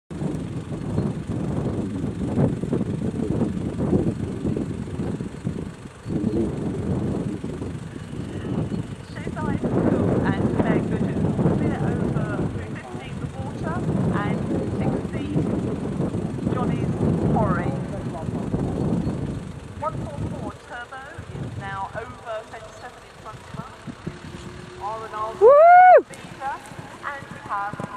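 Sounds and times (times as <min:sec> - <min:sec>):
wind buffeting microphone: 0:00.1 - 0:27.9
faint voices: 0:06.1 - 0:06.9, 0:07.8 - 0:15.5, 0:19.8 - 0:27.9.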